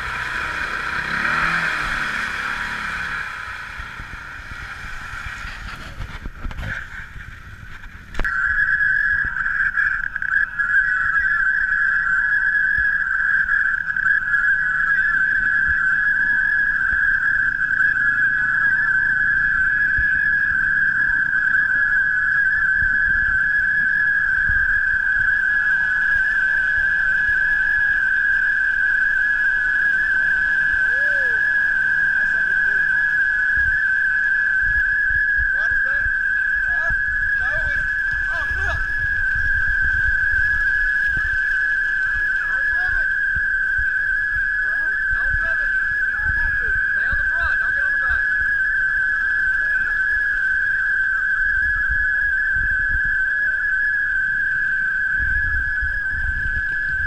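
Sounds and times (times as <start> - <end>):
high-pitched mechanical whine: 0.0 - 57.0.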